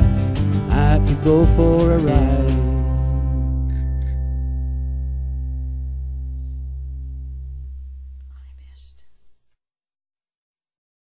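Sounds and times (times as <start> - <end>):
deep bass note: 0.0 - 3.7, 5.1 - 8.8
final chord ringing out: 4.6 - 8.2.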